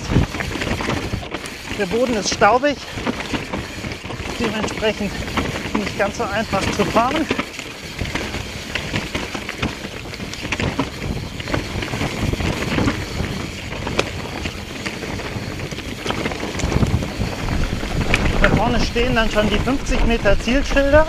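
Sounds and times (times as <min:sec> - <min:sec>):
bike clicks and rattles: 0:00.0 - 0:21.0
tyres rumbling over dirt: 0:00.0 - 0:21.0
wind rushing over microphone: 0:00.0 - 0:21.0.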